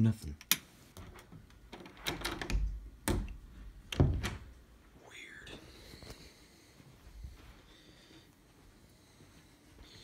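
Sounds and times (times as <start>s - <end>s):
footsteps: 4.8s - 10.0s.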